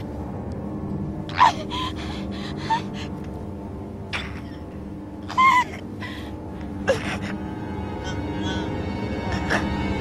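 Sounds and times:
faint low drone: 0:00.0 - 0:10.0.

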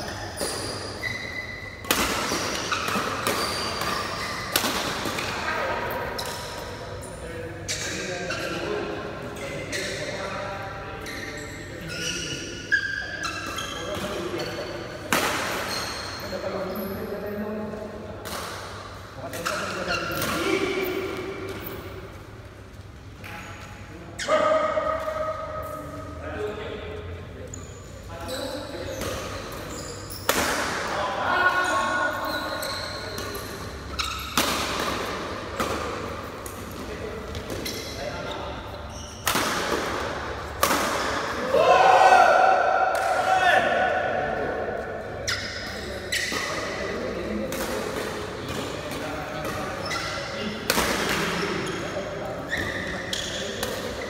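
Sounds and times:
rackets hitting shuttlecock: 0:01.8 - 0:05.4, 0:13.4 - 0:15.8, 0:34.0 - 0:38.0, 0:39.1 - 0:41.5, 0:45.4 - 0:49.8, 0:50.6 - 0:51.6.

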